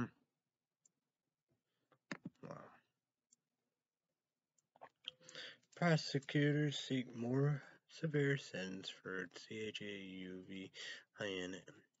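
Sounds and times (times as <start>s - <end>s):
man speaking: 5.8s - 11.7s.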